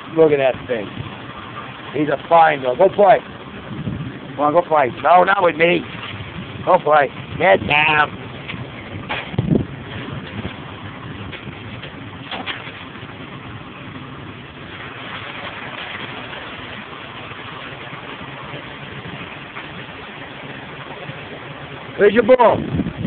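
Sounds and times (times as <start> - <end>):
ship machinery drone: 0.0 - 23.0.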